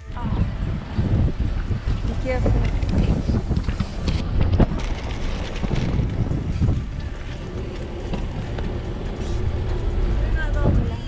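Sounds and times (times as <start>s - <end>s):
car rumble: 0.0s - 11.0s
wind buffeting microphone: 0.0s - 11.0s.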